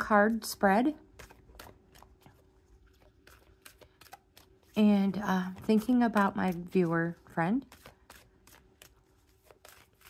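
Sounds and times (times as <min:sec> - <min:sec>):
cards being shuffled: 0:05.5 - 0:10.0.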